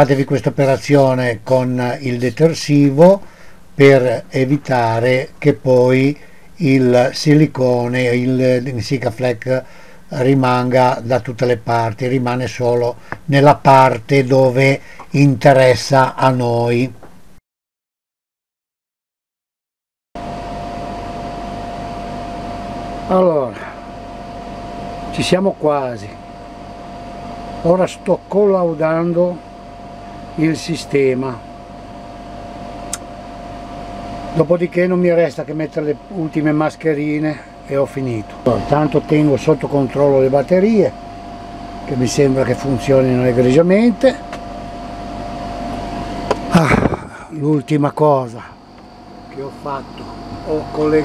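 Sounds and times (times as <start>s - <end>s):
air conditioner running: 0.0s - 17.4s, 20.2s - 51.0s
constant whine: 0.0s - 17.4s, 20.3s - 51.0s.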